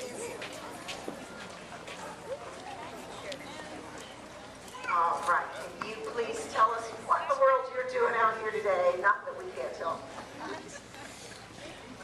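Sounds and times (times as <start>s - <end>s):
faint crowd murmur: 0.0s - 12.0s.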